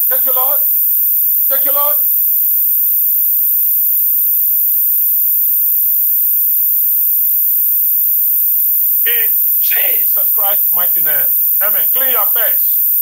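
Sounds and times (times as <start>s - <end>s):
electrical hum and buzz: 9.1s - 12.7s.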